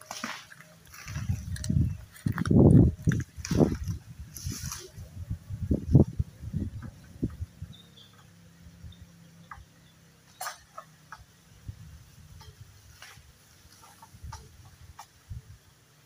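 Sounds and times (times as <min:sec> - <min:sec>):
rustling: 0:00.0 - 0:05.1.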